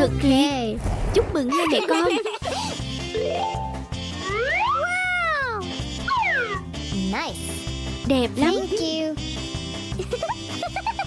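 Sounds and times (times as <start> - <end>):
upbeat background music: 0.0 - 0.8, 1.4 - 11.0
cartoon sound effect rising and falling: 3.1 - 6.6.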